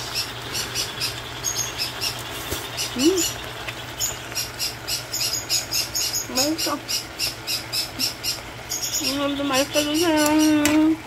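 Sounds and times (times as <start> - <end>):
parrot chirping: 0.0 - 10.6
low steady hum: 0.0 - 11.0.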